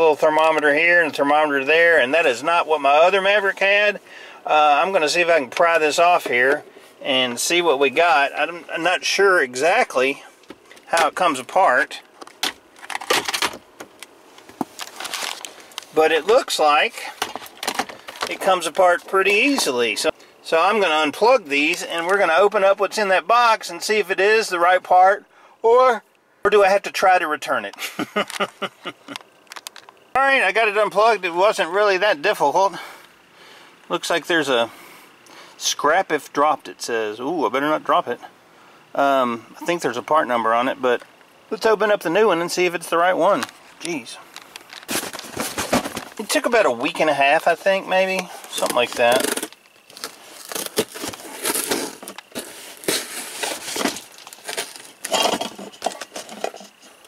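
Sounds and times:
cardboard crackling: 14.4 - 16.4, 44.6 - 46.5, 48.4 - 56.9
tool scraping packing tape: 48.6 - 56.9.

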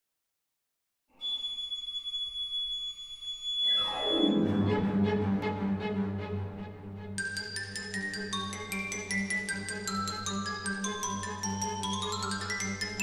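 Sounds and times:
orchestral music: 4.0 - 13.0.

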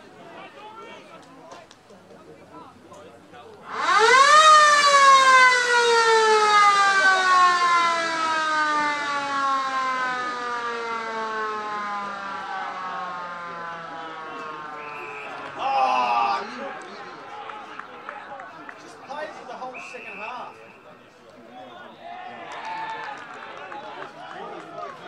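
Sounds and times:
siren winding up and down: 3.7 - 14.8.

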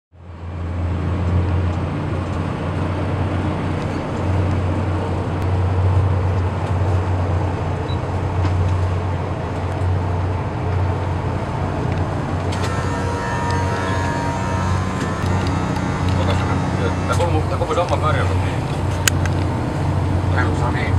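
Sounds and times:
wind: 0.1 - 20.9
boat diesel engines droning: 0.2 - 20.9
high whining tones: 12.5 - 20.4.

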